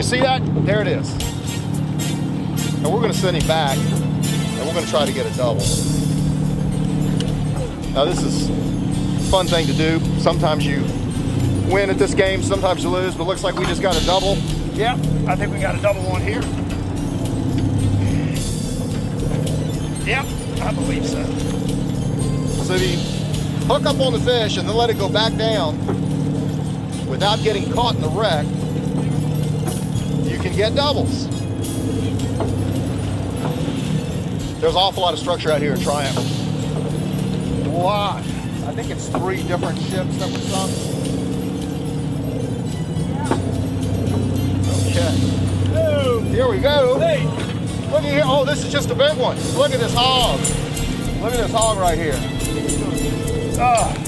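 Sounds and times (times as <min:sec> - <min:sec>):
boat engine droning: 0:00.0 - 0:54.0.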